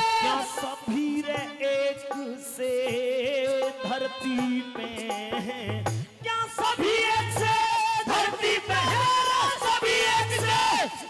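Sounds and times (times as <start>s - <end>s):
man singing into a microphone: 0.0s - 11.0s.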